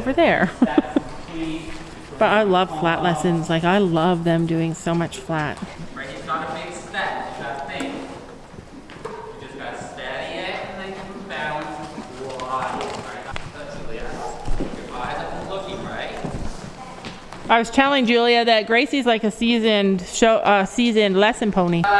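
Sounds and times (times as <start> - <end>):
indistinct voices talking: 0.0 - 8.8
horse hooves thudding on dirt: 0.0 - 18.4.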